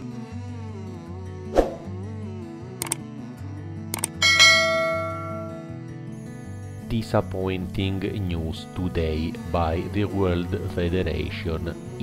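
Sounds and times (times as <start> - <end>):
background music: 0.0 - 12.0
mouse clicks: 3.9 - 4.2
bright bell ding: 4.2 - 5.7.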